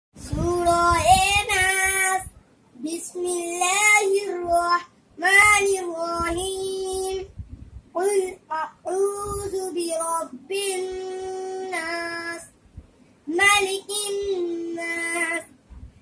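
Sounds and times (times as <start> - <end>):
boy chanting melodic recitation: 0.2 - 12.6, 13.3 - 15.6.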